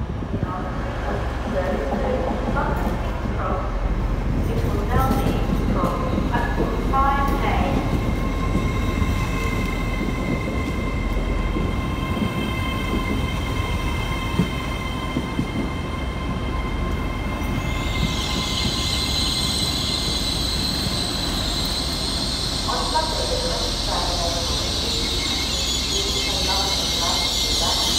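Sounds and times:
electric train whine: 0:06.5 - 0:27.9.

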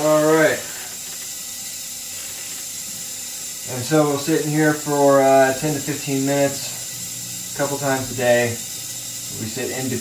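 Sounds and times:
electrical hiss with crackle: 0:00.0 - 0:10.0
thin high whine: 0:00.0 - 0:10.0.

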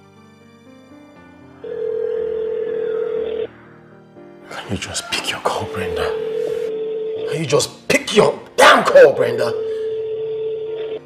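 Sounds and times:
soft background music: 0:00.0 - 0:11.0
telephone ringback tone: 0:01.6 - 0:03.5, 0:05.6 - 0:07.5, 0:09.2 - 0:11.0.

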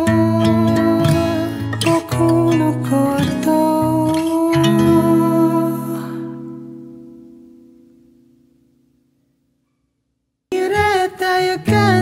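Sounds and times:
acoustic guitar chord strummed: 0:00.0 - 0:09.4, 0:10.5 - 0:12.0.

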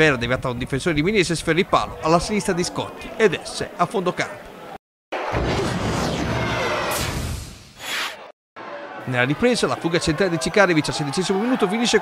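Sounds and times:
swoosh: 0:05.2 - 0:08.3.

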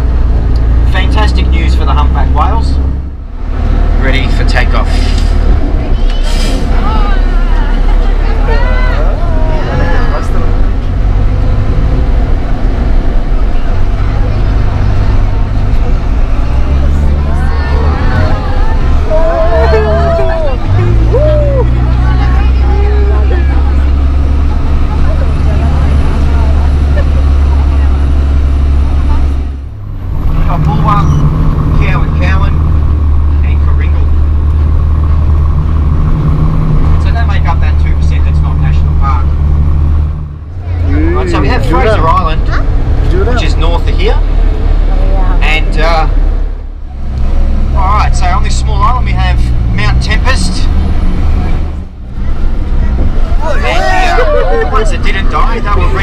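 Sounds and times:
bus engine drone: 0:00.0 - 0:56.0
voices talking: 0:03.9 - 0:34.4, 0:40.3 - 0:56.0.

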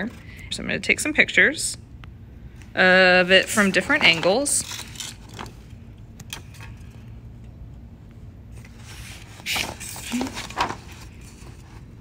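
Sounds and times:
steady low hum: 0:00.0 - 0:12.0
paper rustling: 0:08.5 - 0:12.0.

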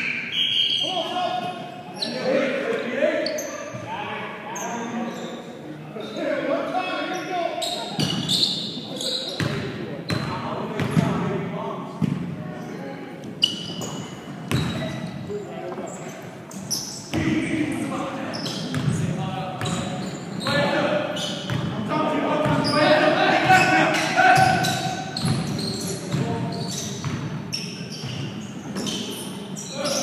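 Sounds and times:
players calling out: 0:16.5 - 0:30.0.

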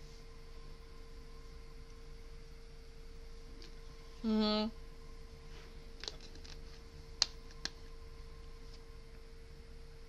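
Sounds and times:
low hiss: 0:00.0 - 0:10.0
thin electrical hum: 0:00.0 - 0:10.0.

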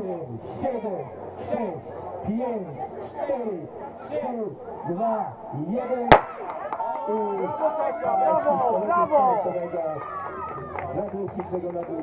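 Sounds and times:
crowd shouting and cheering: 0:04.6 - 0:11.6.

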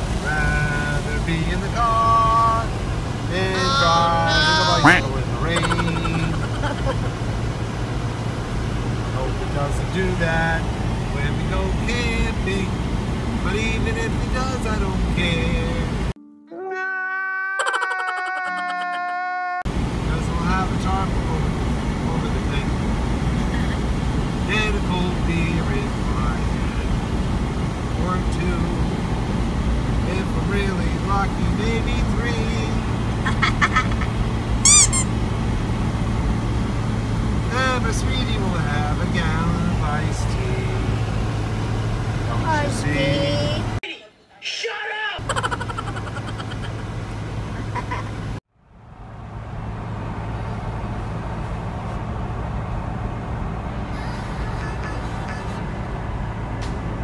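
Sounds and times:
car interior hum: 0:00.0 - 0:16.2, 0:19.7 - 0:43.8, 0:45.2 - 0:57.0
voices talking: 0:00.2 - 0:07.5, 0:09.1 - 0:12.8, 0:20.0 - 0:27.1, 0:37.5 - 0:41.0, 0:42.2 - 0:48.4
man wailing: 0:03.4 - 0:06.9, 0:16.5 - 0:19.6.

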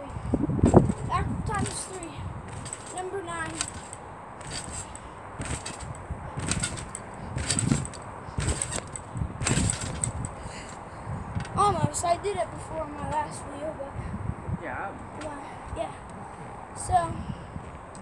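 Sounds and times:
trampoline springs bouncing: 0:00.0 - 0:13.4.

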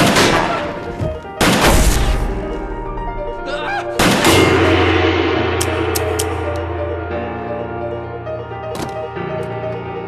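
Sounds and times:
loud hit with ringing chord: 0:04.0 - 0:07.6.

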